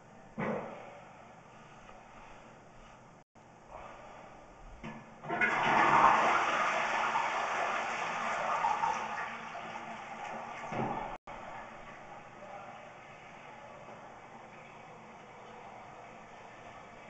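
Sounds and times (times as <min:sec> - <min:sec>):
toilet flushing: 0:05.2 - 0:12.2.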